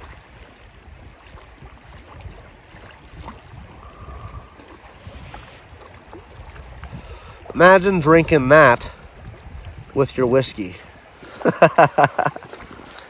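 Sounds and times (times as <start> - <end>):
wind buffeting microphone: 0.0 - 11.1
river flowing: 0.0 - 13.0.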